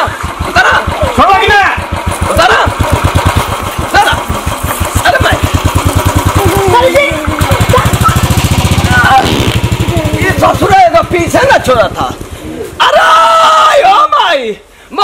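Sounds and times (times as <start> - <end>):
motorcycle engine idling and revving: 0.0 - 12.8
voices shouting: 0.0 - 14.6.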